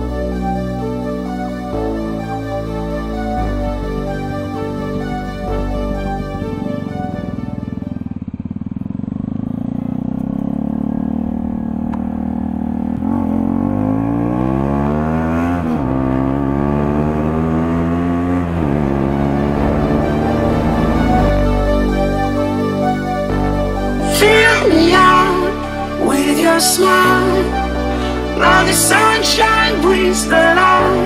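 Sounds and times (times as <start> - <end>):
motorcycle engine accelerating: 3.1 - 31.0.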